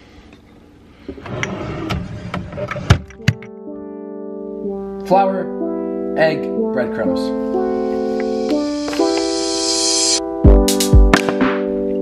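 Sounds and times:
keyboard music: 3.0 - 12.0.

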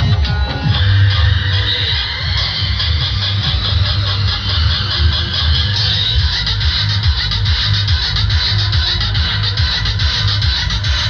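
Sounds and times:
music with heavy bass beat: 0.0 - 11.0.

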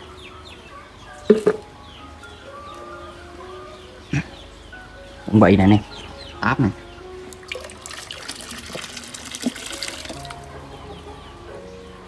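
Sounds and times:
water splashing in fish tank: 7.3 - 10.5.

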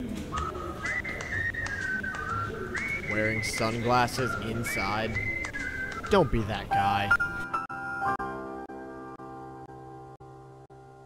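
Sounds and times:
person whistling a tune: 0.3 - 6.5.

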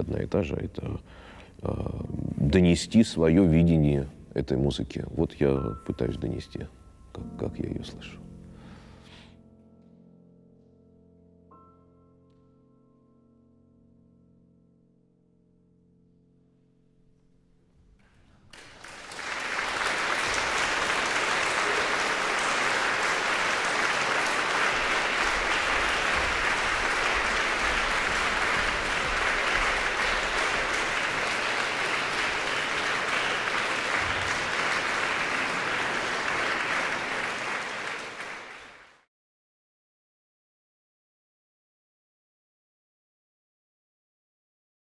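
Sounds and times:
audience applauding: 18.5 - 39.0.

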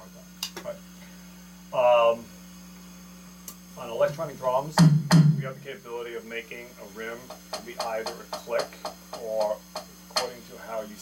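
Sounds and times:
electronic drum pad strikes: 4.1 - 5.7, 7.1 - 10.4.

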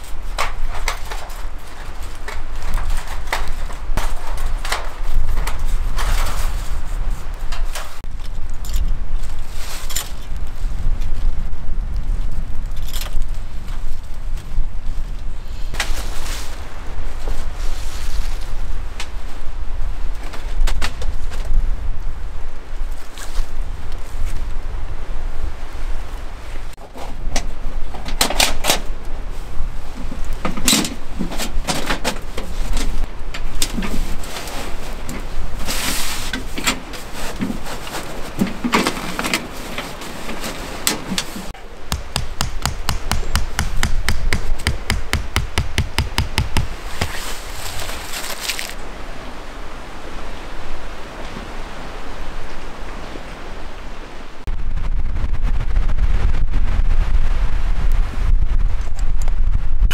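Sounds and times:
wind rumble on microphone: 0.0 - 59.9
tent stakes knocking and clicking: 40.9 - 47.2.

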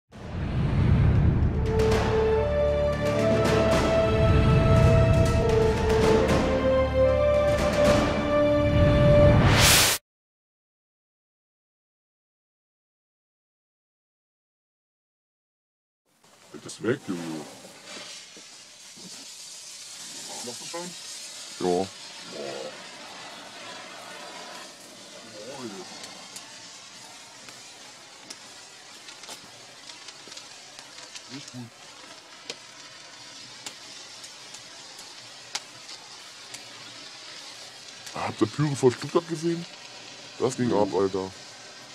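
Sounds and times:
flare burning with steady hiss: 0.2 - 10.0, 16.1 - 41.9
faint crackles: 16.1 - 41.9.

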